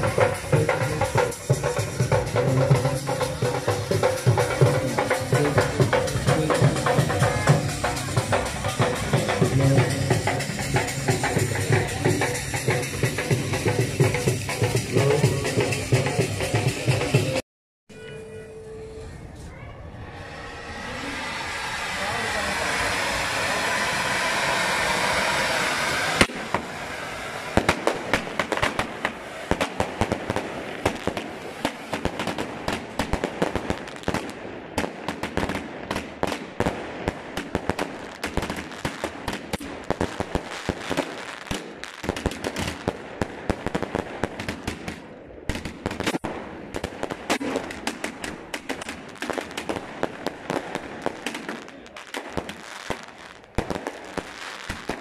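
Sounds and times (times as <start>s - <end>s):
fountain firework hissing: 0.0s - 17.0s, 19.9s - 55.0s
aerial fireworks popping and crackling: 20.0s - 55.0s.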